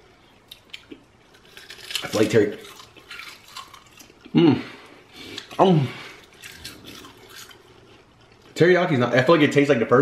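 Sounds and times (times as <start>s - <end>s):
person chewing crisp snack: 0.1s - 8.6s.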